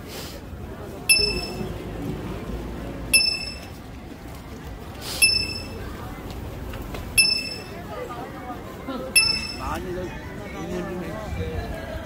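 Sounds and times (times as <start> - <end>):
low background noise: 0.0 - 12.0
bright bell ding: 1.1 - 1.7, 3.1 - 3.8.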